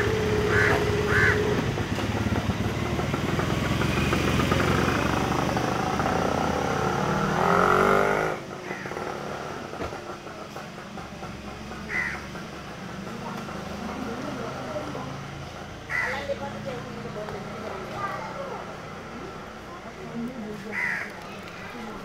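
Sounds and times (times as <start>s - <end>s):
vehicle engine running: 0.0s - 22.0s.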